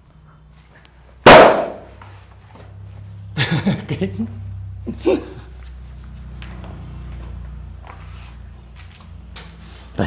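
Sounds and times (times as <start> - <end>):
loud bang: 1.2 - 1.9.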